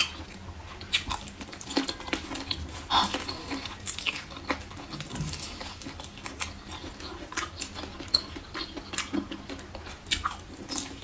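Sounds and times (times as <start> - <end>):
chewing and lip-smacking: 0.0 - 11.0.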